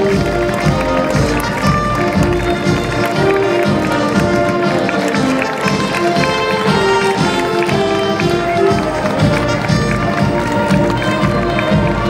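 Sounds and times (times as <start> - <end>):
crowd murmuring: 0.0 - 12.0
march music: 0.0 - 12.0
shuffling marching footsteps: 0.0 - 12.0.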